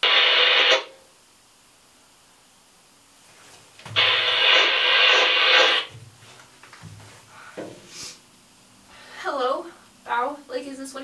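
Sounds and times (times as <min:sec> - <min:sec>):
two-way radio static burst: 0:00.0 - 0:01.0, 0:03.9 - 0:05.9.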